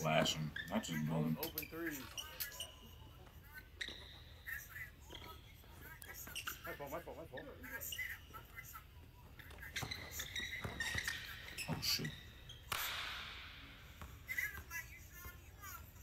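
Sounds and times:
sneakers squeaking on hardwood: 0.0s - 13.1s, 13.8s - 15.8s
basketball bouncing: 9.5s - 14.8s.

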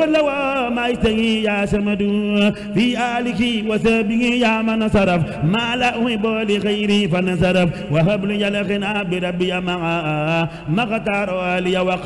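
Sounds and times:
chanted devotional recitation: 0.0s - 12.0s.

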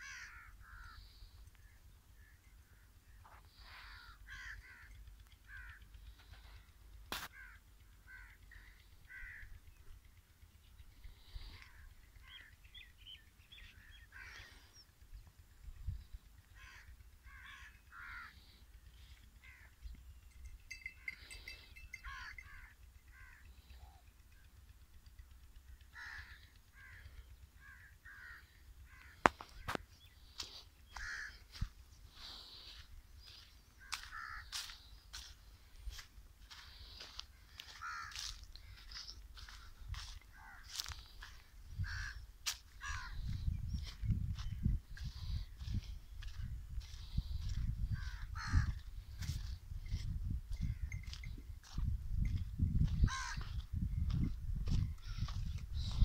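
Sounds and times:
crows cawing: 0.0s - 10.2s, 10.9s - 51.8s, 52.8s - 53.6s, 54.6s - 56.0s
faint bird calls: 0.0s - 56.0s
low rumble: 0.6s - 56.0s.

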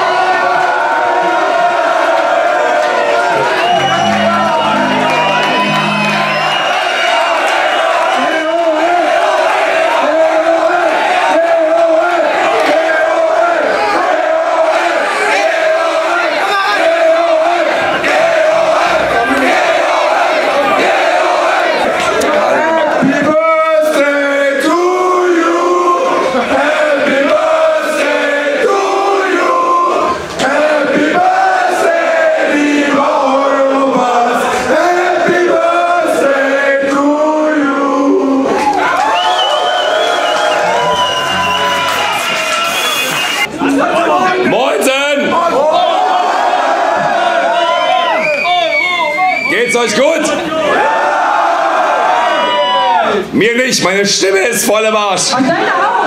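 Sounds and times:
crowd singing together: 0.0s - 38.8s, 46.1s - 47.6s.

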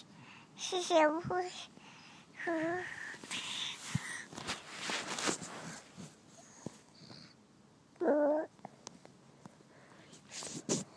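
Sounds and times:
baby whining: 8.0s - 8.5s.

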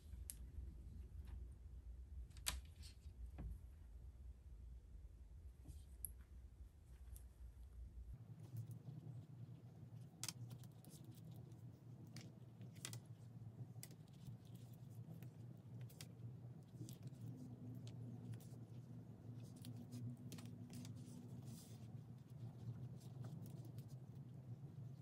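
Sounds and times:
low room hum: 0.0s - 25.0s.

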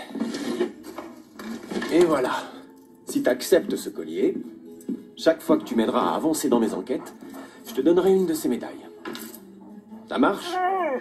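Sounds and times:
metal medals clinking: 9.1s - 9.4s.

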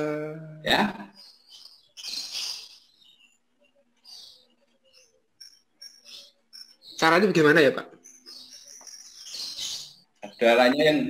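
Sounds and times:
high bird chirps: 0.0s - 11.0s.

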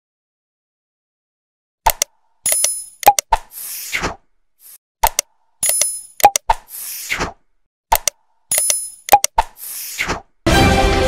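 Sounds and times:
quick clicks and pops: 1.8s - 10.3s.

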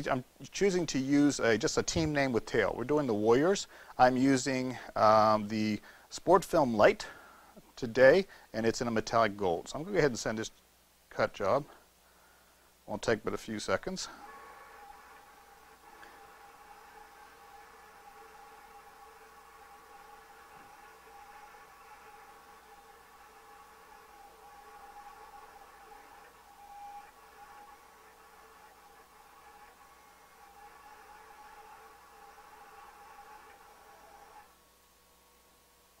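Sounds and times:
vinyl cutter motors whining: 13.6s - 34.6s.

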